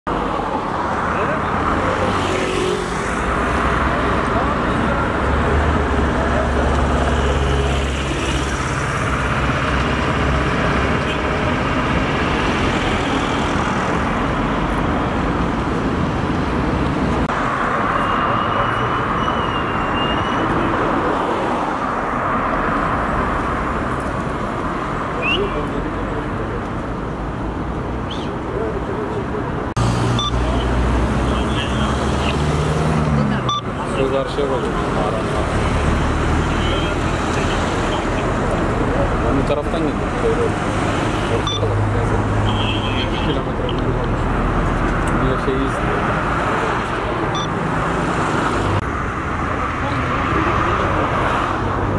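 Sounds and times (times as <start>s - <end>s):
highway traffic: 0.0s - 51.9s.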